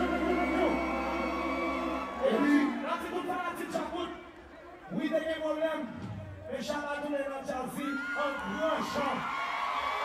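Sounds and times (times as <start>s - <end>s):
live band music: 0.0s - 2.8s
bass: 0.0s - 4.5s.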